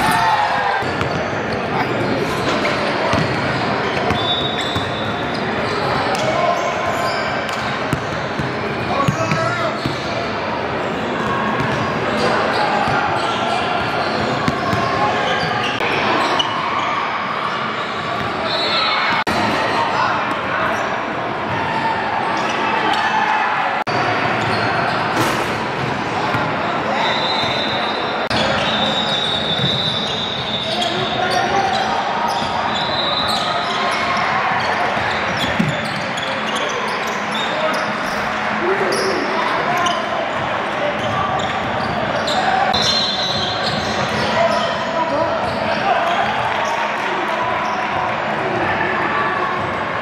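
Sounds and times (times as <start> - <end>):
sneakers squeaking: 0.0 - 23.4, 24.2 - 48.2
indistinct shouts and chatter: 0.0 - 50.0.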